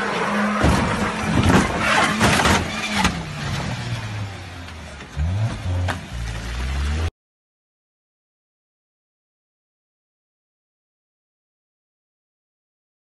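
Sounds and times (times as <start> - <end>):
car engine running hard: 0.0 - 7.1.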